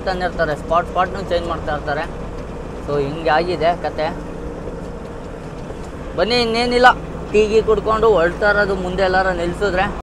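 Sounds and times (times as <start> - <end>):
faint constant hum: 0.0 - 10.0
truck engine and road rumble: 0.0 - 10.0.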